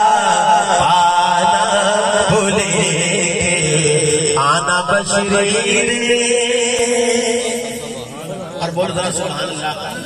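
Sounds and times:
man chanting into a microphone: 0.0s - 10.0s.

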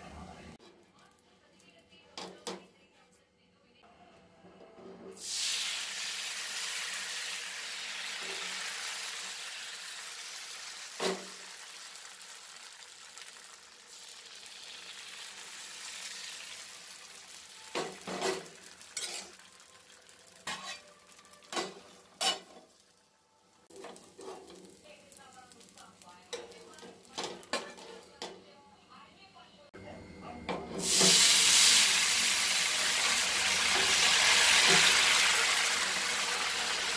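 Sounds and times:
batter sizzling in hot pan: 5.2s - 27.8s, 30.8s - 36.9s.

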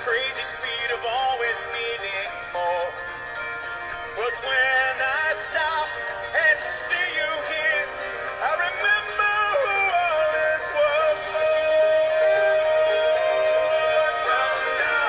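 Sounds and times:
person singing with vibrato: 0.0s - 3.3s, 4.0s - 15.0s
backing music: 0.0s - 15.0s.

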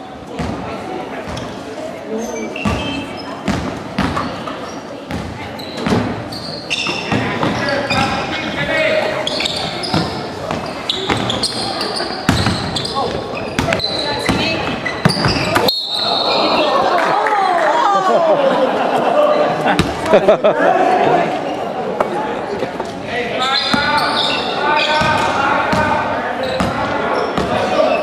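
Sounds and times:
voices in echoing hall: 0.0s - 28.0s
basketball bouncing on wooden floor: 2.6s - 4.3s, 5.1s - 6.2s, 12.3s - 12.8s, 13.5s - 15.6s.

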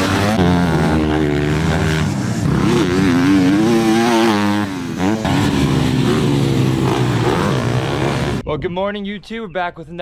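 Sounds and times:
dirt bike engine revving: 0.0s - 8.4s.

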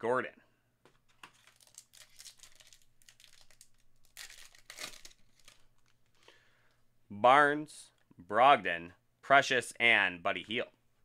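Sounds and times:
foil pack crinkling and tearing: 1.2s - 6.1s.

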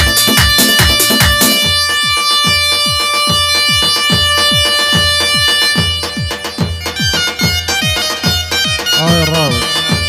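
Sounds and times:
reedy keyboard note: 0.0s - 10.0s.

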